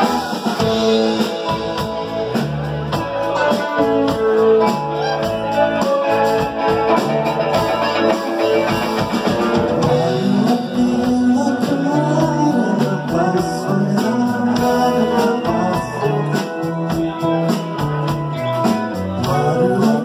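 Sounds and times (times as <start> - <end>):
electric guitars: 0.0 - 20.0
keyboard: 0.0 - 20.0
steady drum beat: 0.0 - 20.0.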